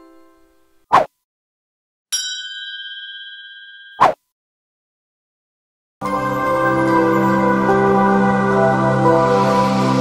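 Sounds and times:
notification bell ding: 0:02.2 - 0:04.0.

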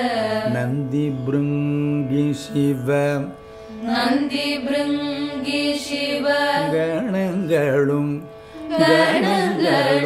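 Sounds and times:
group of voices singing: 0:03.8 - 0:07.0, 0:08.7 - 0:10.0.

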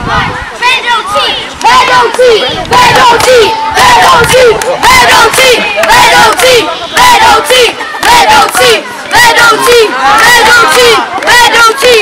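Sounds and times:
children chanting a cheer: 0:00.0 - 0:12.0.

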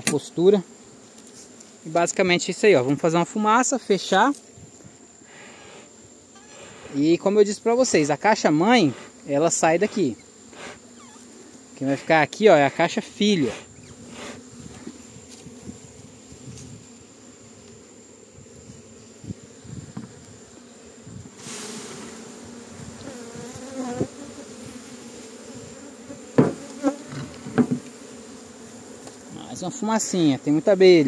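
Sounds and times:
bees buzzing: 0:00.3 - 0:31.0
knocks on wooden hive boxes: 0:19.9 - 0:20.2, 0:26.3 - 0:28.0
short hiss: 0:21.4 - 0:22.1.

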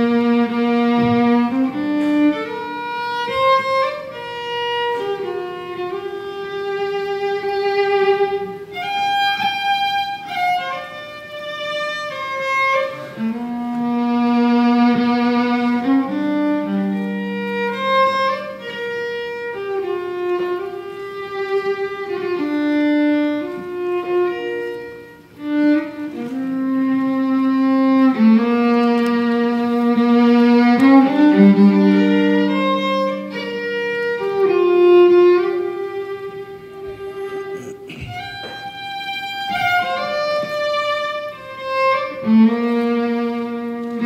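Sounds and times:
fiddle playing slow air: 0:00.0 - 0:44.0.

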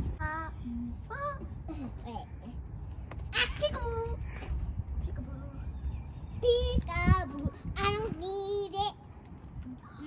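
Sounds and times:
girl singing: 0:00.0 - 0:01.5, 0:06.4 - 0:09.0.

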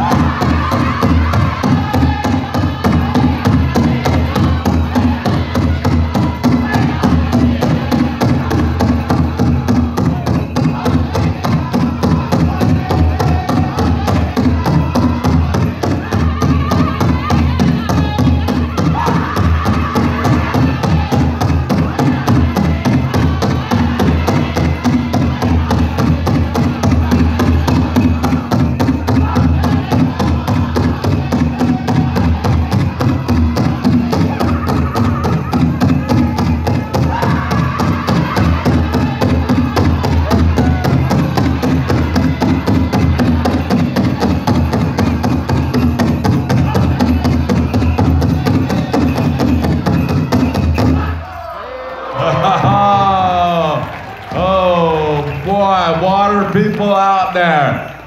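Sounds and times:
big drum beat: 0:00.0 - 0:51.3
high-pitched group singing: 0:00.0 - 0:55.9.

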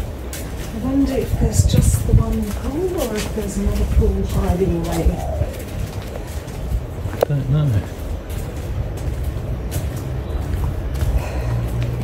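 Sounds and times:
dove cooing: 0:02.4 - 0:06.4
man talking: 0:07.2 - 0:08.0.

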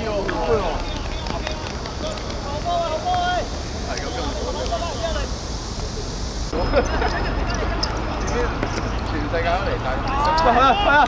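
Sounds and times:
steady low rumble: 0:00.0 - 0:10.1
distant players calling: 0:00.0 - 0:11.0.

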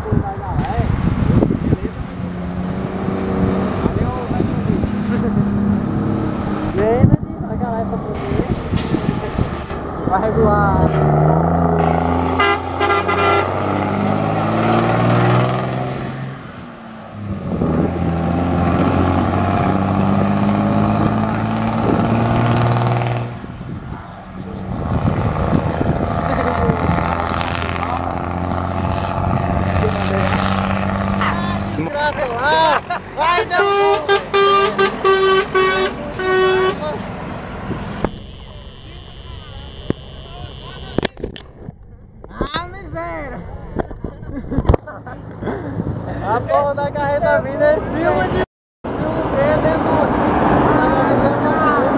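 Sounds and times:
diesel truck engine: 0:00.0 - 0:51.9
truck horn blasts: 0:11.6 - 0:14.8, 0:31.1 - 0:31.7, 0:33.4 - 0:37.0, 0:37.9 - 0:41.2.

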